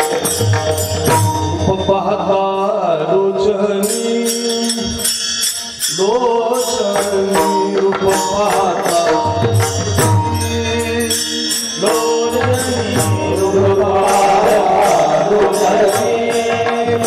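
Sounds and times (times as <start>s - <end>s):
devotional singing: 1.5s - 17.0s.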